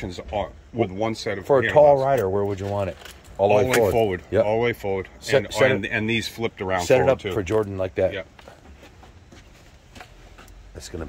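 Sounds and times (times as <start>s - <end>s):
man speaking: 0.0s - 8.3s.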